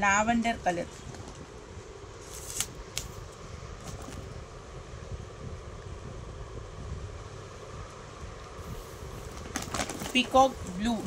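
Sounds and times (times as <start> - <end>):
faint hiss: 4.9 - 11.0.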